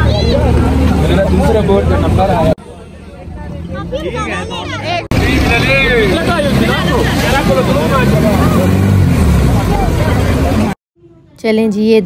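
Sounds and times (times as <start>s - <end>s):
voices calling out: 0.0s - 10.8s
jet ski engine rumble: 4.9s - 10.8s.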